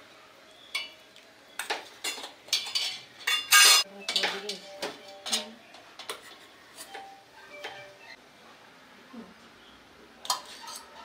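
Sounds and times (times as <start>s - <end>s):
metal ladle clinking on pots: 1.6s - 6.3s, 10.2s - 10.9s.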